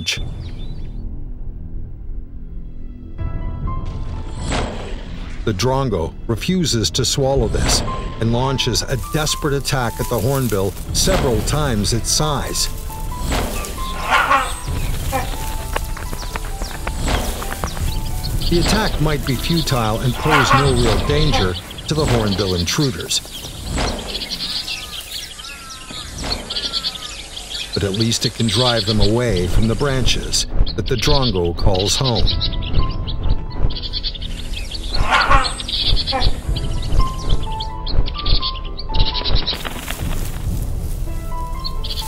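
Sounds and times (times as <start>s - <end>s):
background music: 0.0s - 42.0s
sharp bird calls: 8.4s - 40.4s
rustling: 9.0s - 26.6s, 39.2s - 42.0s.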